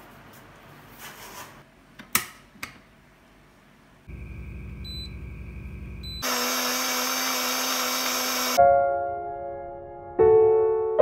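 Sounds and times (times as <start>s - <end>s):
short beeps: 4.2s - 6.2s
small electric motor whirring: 6.2s - 8.6s
piano note: 8.6s - 11.0s.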